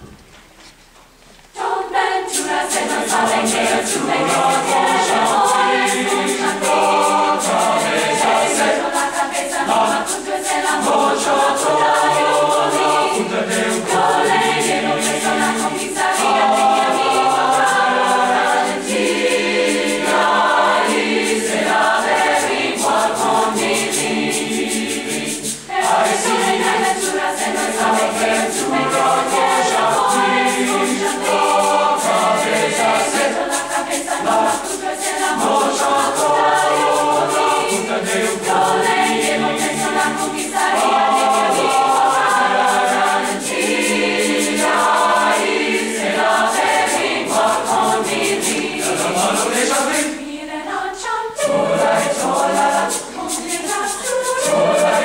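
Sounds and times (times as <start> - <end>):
mixed choir singing: 1.5 - 55.0.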